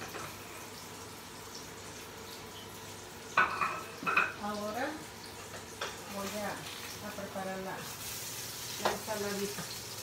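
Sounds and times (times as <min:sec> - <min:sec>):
fish sizzling in a pan: 0:00.0 - 0:10.0
dishware set down: 0:03.4 - 0:04.4.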